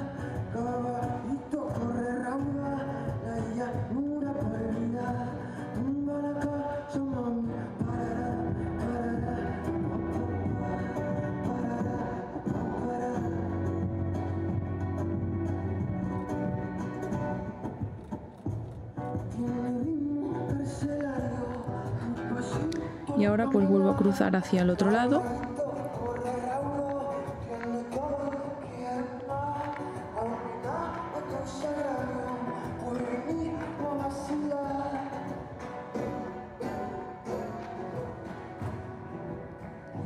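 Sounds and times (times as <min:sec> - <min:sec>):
man singing: 0:00.0 - 0:14.8, 0:19.1 - 0:39.0
live band playing: 0:29.5 - 0:40.0.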